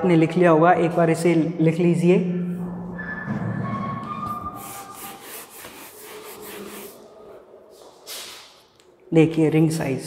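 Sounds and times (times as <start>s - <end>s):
duster rubbing on whiteboard: 4.2s - 7.1s.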